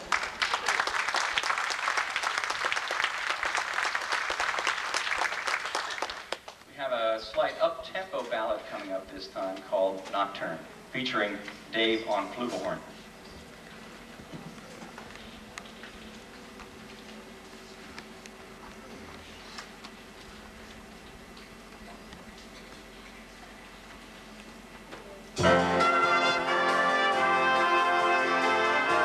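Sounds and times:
jazz big band playing: 25.4 - 29.0.

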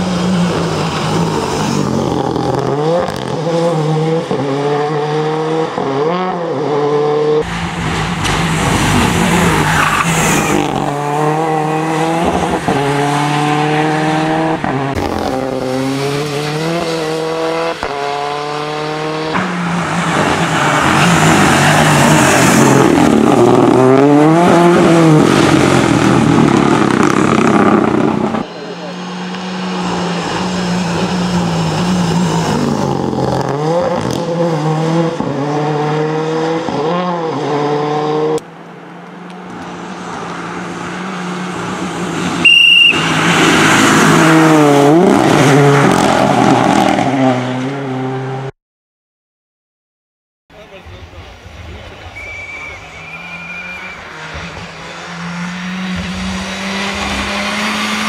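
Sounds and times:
rally car engine revving: 0.0 - 38.5, 39.4 - 48.5, 51.0 - 58.0
tyre noise on wet tarmac: 7.4 - 18.1
short high-pitched beep: 52.1 - 54.0.

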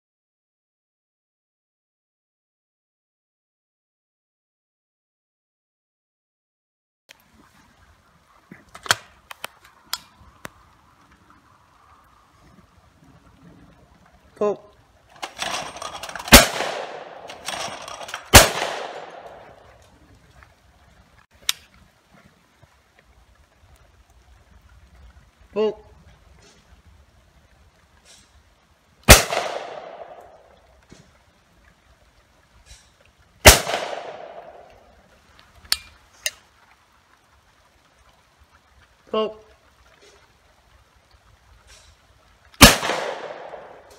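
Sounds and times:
shotgun shots echoing: 15.2 - 19.6, 29.1 - 30.4, 33.4 - 34.7, 42.6 - 43.9.

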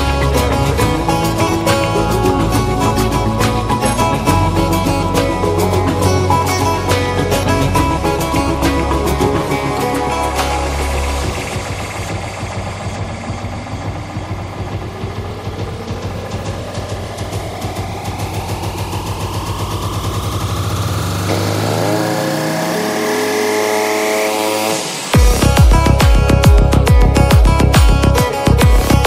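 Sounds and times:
rising synth sweep: 0.0 - 27.7
deep bass: 0.0 - 29.0
fast pulsing rhythm: 0.0 - 29.0
sustained synth chords: 0.0 - 29.0.

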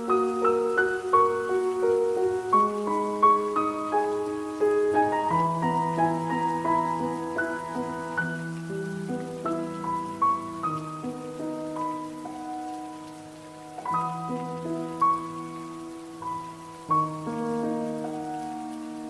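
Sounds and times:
faint steady hiss: 0.0 - 19.0
slow solo piano: 0.0 - 19.0.

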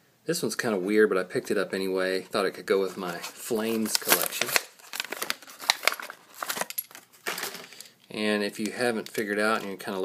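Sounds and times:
cardboard tearing: 3.0 - 6.7
plastic crackling and snapping: 3.0 - 7.9, 8.5 - 9.9.

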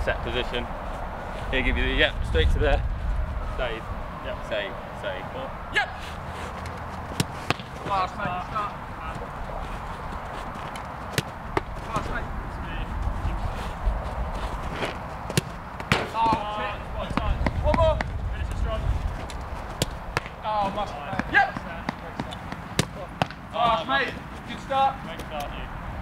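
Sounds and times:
footballs being kicked: 7.0 - 9.3, 14.7 - 18.2, 19.1 - 23.9.

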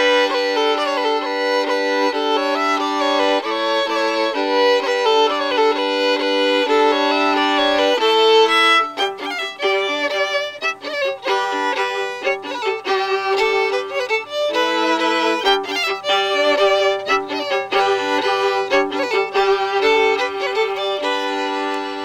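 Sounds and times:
two fiddles playing a tune: 0.0 - 22.0.

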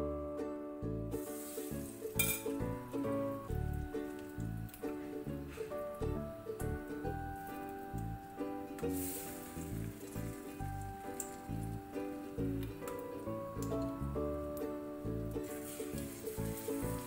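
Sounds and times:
batter sizzling in hot oil: 1.1 - 17.0
sharp clink: 2.2 - 2.6.

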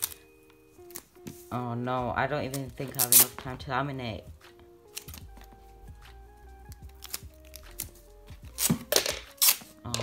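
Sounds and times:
quiet background music: 0.0 - 10.0
sticky tape pulled off roll: 3.0 - 3.4, 6.8 - 9.7.

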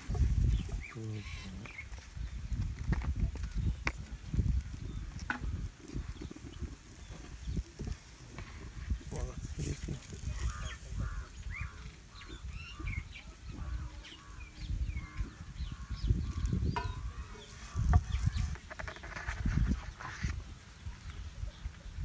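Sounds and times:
birds chirping: 0.0 - 22.0.

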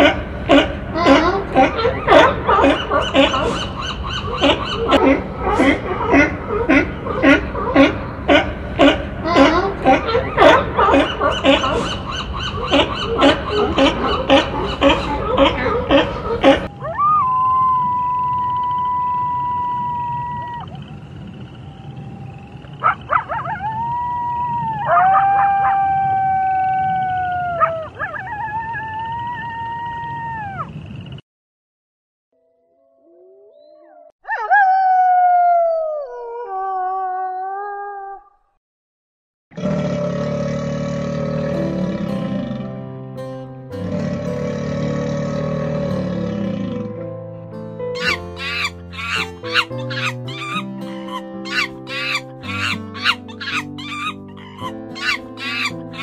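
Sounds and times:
wolves howling: 0.0 - 30.8, 33.0 - 38.4, 43.8 - 46.9, 48.0 - 56.0.

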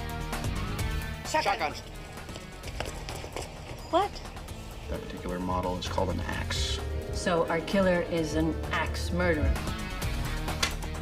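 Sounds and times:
background music: 0.0 - 11.0
footsteps on pavement: 2.0 - 4.5.

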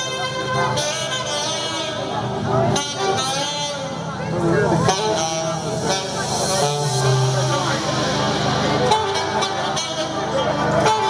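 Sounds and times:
bass line: 0.0 - 11.0
live party music: 0.0 - 11.0
people talking: 0.0 - 11.0.

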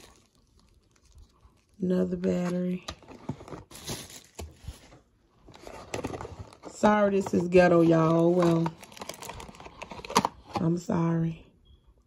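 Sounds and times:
packaging rustling and crinkling: 0.0 - 10.6.

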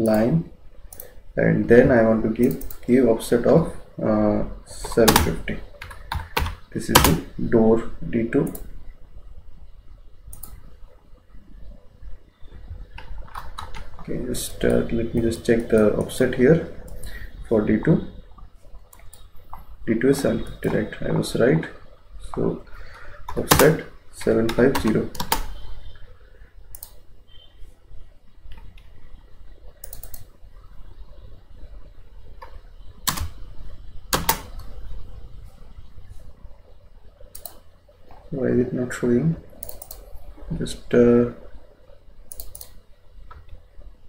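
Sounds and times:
faint low room hum: 0.0 - 44.0
keyboard keystrokes: 24.5 - 25.5, 34.1 - 34.7.

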